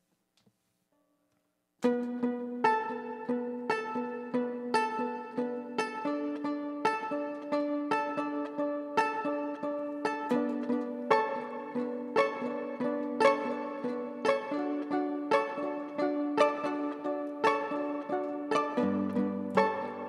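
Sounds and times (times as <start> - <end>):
violin plucked pizzicato: 1.8 - 20.0.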